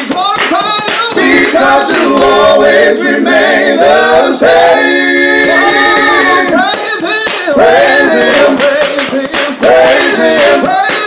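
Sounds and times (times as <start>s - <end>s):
a cappella gospel singing: 0.0s - 11.0s.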